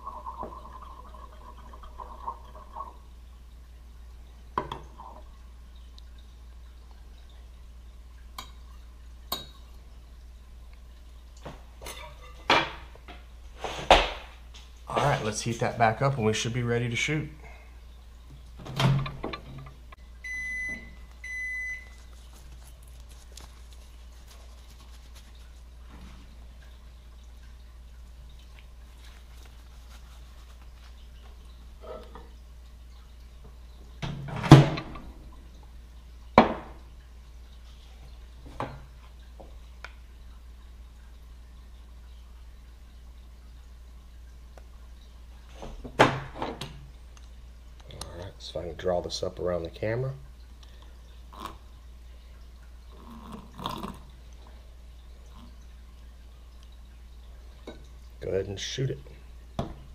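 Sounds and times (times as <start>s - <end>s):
microwave keypad beeps: 20.2s - 22.0s.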